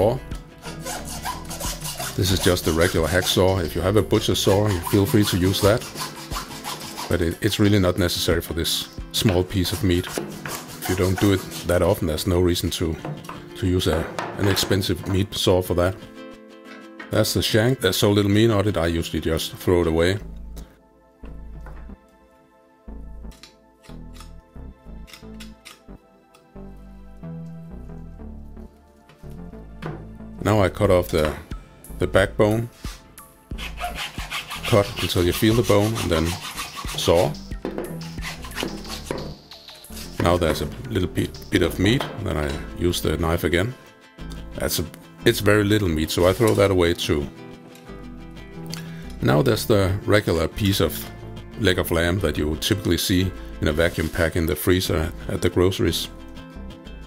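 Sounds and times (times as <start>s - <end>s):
background music with low bass: 0.0s - 57.0s
hacksaw sawing through bone: 0.6s - 7.5s, 9.5s - 12.0s, 33.6s - 39.3s.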